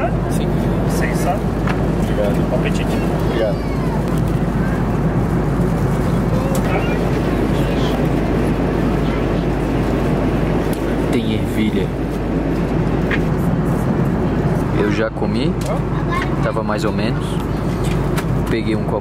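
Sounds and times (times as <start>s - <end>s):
faint voices: 0.0s - 19.0s
jet airliner cabin drone: 0.0s - 19.0s.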